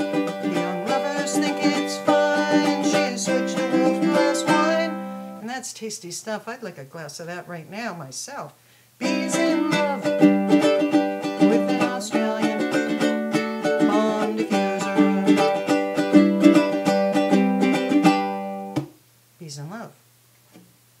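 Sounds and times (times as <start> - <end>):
ukulele strumming: 0.0 - 5.4, 9.0 - 19.0.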